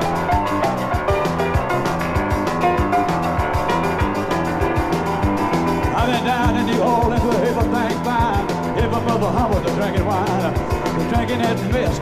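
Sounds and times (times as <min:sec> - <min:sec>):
bending wavering lead guitar: 0:00.0 - 0:12.0
rock and roll band playing: 0:00.0 - 0:12.0.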